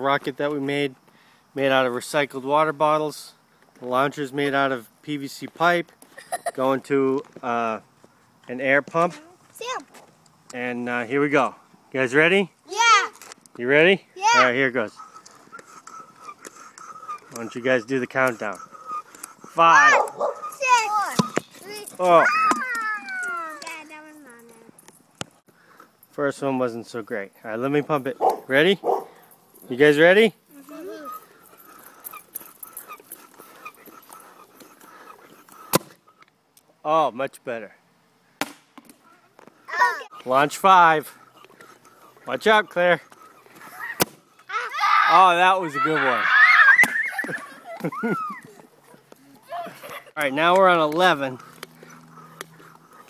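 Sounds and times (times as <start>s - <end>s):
dog whining: 14.2s - 17.4s, 18.5s - 21.2s, 30.6s - 35.4s
dog barking and yelping: 18.6s - 22.4s, 28.2s - 29.3s, 43.2s - 50.1s
air rocket pop: 38.4s - 39.0s, 43.9s - 44.2s.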